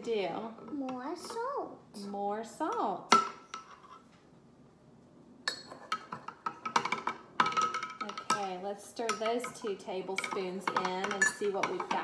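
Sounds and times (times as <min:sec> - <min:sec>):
metal spoon clinking on glass jar: 0:09.1 - 0:12.0.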